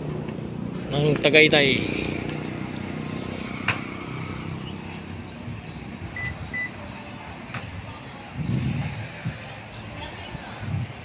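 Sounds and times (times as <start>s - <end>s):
traffic rumble: 0.0s - 11.0s
short high beeps: 6.2s - 6.8s.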